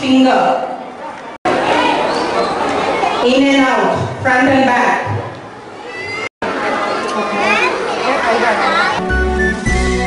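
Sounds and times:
children chattering and calling out: 0.6 - 3.6, 5.1 - 9.4.

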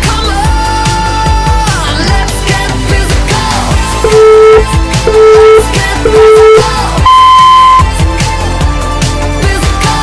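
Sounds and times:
background music with beat: 0.0 - 10.0
high electronic beep: 4.0 - 7.9.

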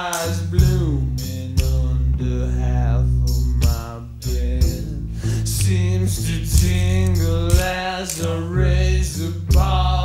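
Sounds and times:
chant-like vocal: 0.0 - 10.0
slow heavy rock music: 0.0 - 10.0.

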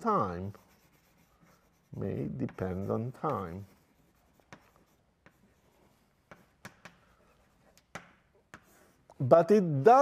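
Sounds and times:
chalk tapping on blackboard: 0.5 - 8.9.

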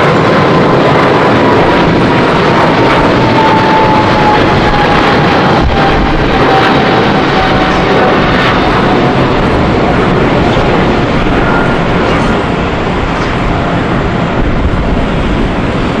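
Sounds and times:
jet plane taking off: 0.0 - 16.0.

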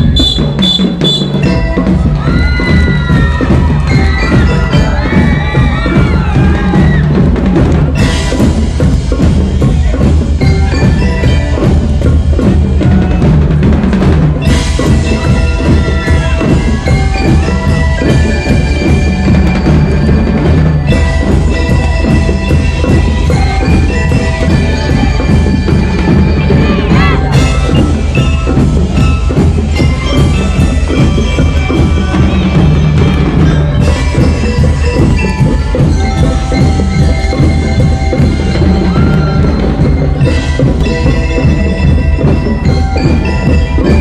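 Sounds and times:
bell lyres ringing a melody: 0.0 - 44.0
continuous drumming: 0.0 - 44.0.

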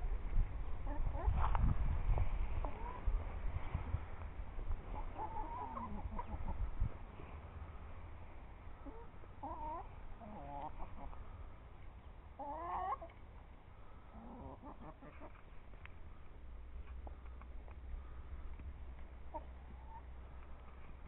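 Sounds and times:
chickens clucking: 0.8 - 4.0, 4.6 - 21.0.

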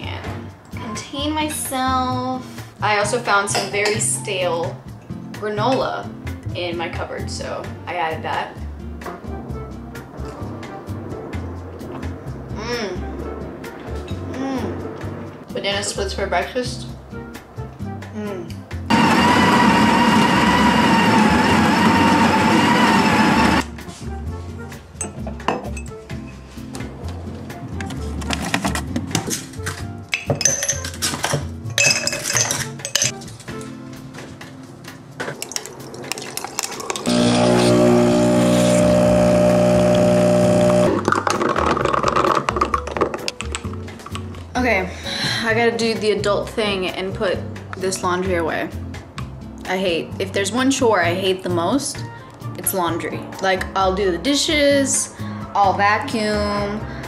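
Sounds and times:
espresso machine pump buzzing: 18.9 - 23.6, 37.1 - 41.0
kitchen appliance motor whirring: 18.9 - 23.6, 37.0 - 41.0.

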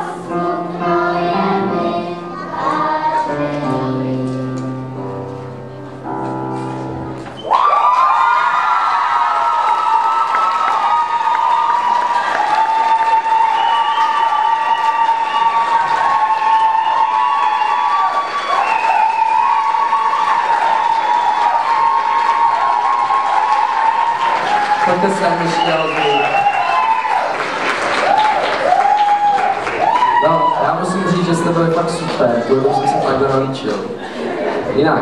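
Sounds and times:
audience applauding: 7.3 - 34.6
high-pitched cheering: 7.4 - 33.5.

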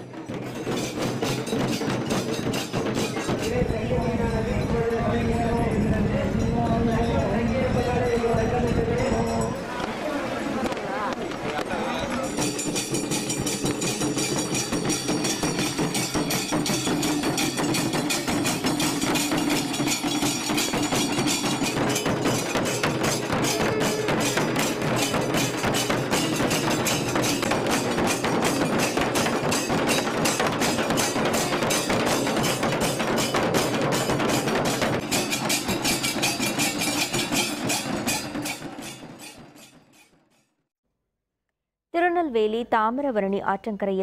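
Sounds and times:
rhythmic percussion beating: 0.0 - 10.0, 10.7 - 40.2
high metallic ringing: 11.8 - 40.5.

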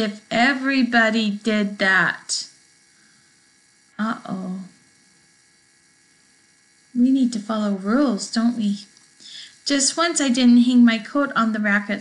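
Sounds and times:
woman speaking: 0.0 - 2.6, 4.0 - 4.8, 7.0 - 12.0
electrical hum with hiss: 0.0 - 12.0.

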